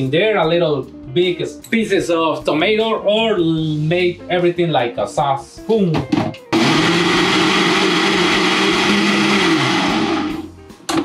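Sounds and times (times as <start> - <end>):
blender motor whining: 6.5 - 10.5.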